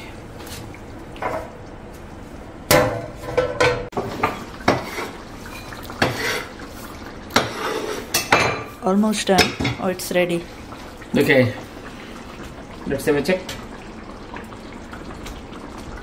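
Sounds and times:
metal cookware clattering: 0:02.7 - 0:06.5.

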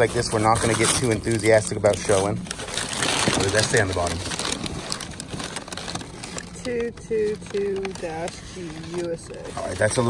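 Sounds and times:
newspaper rustling and crinkling: 0:00.0 - 0:10.0.

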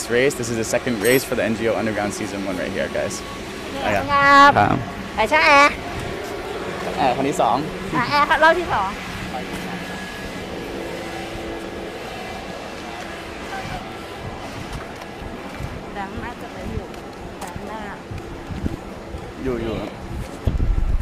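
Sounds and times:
background hubbub: 0:00.0 - 0:20.4
person calling out loudly: 0:03.8 - 0:05.8.

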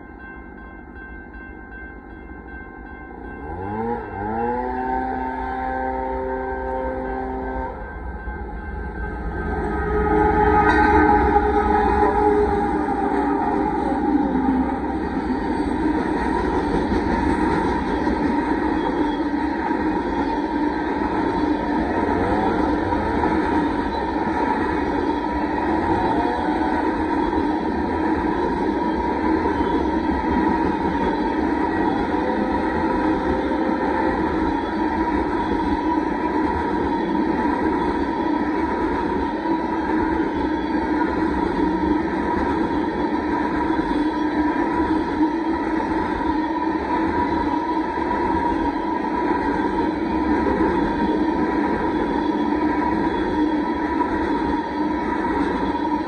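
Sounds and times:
freight train passing: 0:00.0 - 0:56.0
train horn blast: 0:03.4 - 0:15.8, 0:18.7 - 0:27.8, 0:31.4 - 0:35.3.

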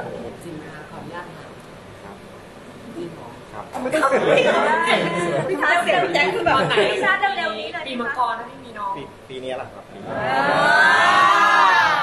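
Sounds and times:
several people talking: 0:00.0 - 0:11.6.

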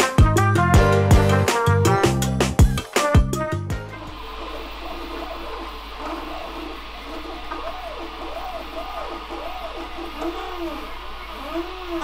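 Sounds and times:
steady low hum: 0:02.7 - 0:12.0
stepper motors whining: 0:03.8 - 0:12.0.

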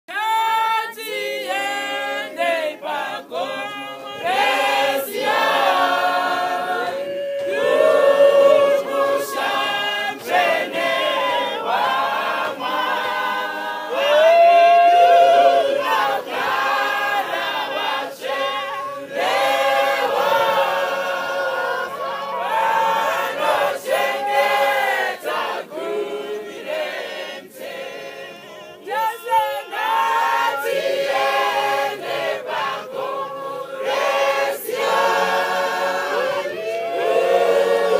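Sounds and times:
mixed choir singing a cappella: 0:00.1 - 0:37.9.

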